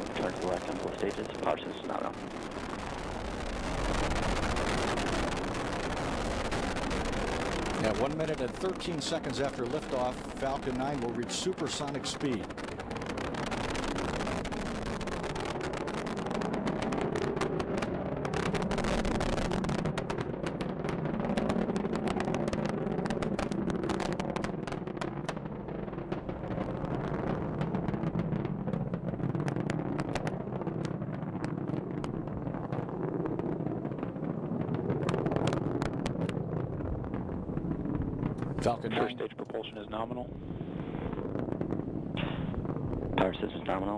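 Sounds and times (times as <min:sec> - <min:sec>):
rocket engine roar with crackle: 0:00.0 - 0:43.9.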